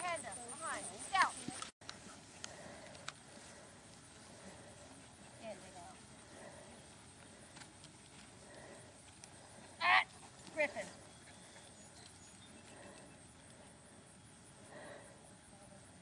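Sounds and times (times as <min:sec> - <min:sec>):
faint steady background noise: 0:00.0 - 0:16.0.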